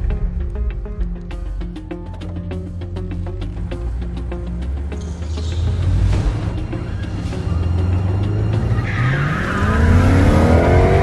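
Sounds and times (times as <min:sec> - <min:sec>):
car engine accelerating hard: 0:03.5 - 0:11.0.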